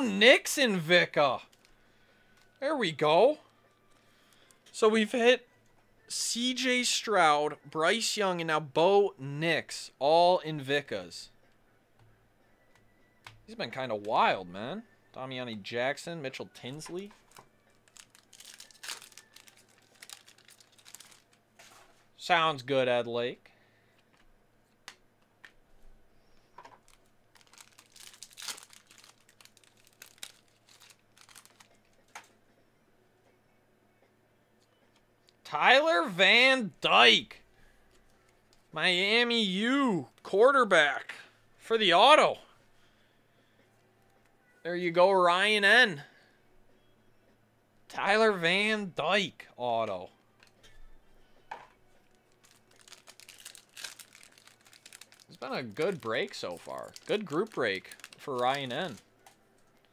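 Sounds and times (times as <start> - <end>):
foil wrapper crinkling and tearing: 17.2 - 21.4, 26.8 - 31.8, 52.3 - 59.0
cards being handled: 52.4 - 59.9.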